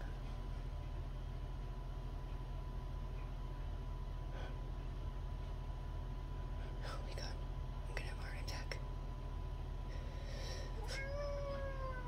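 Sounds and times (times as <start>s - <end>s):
cat yowling low: 10.8s - 12.0s.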